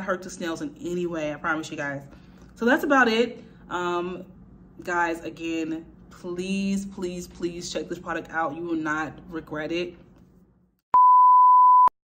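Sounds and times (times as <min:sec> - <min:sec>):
test-tone beep: 0:11.0 - 0:11.9.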